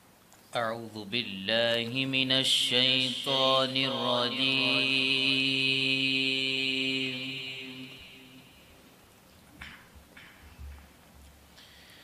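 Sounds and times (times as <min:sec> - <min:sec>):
man chanting melodically: 0:00.5 - 0:08.8.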